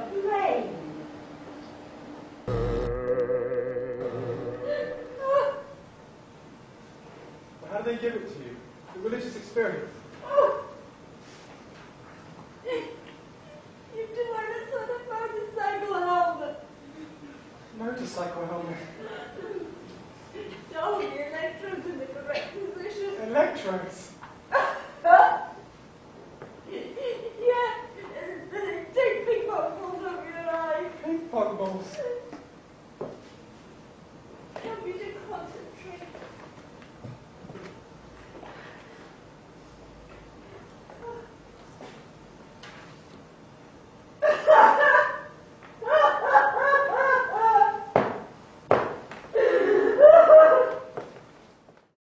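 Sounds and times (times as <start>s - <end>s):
person making high wordless cries: 2.5s - 5.6s.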